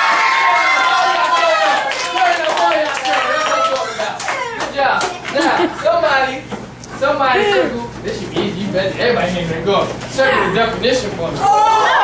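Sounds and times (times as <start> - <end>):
children cheering and shouting: 0.0 - 2.4, 11.4 - 12.0
people clapping: 0.0 - 5.6.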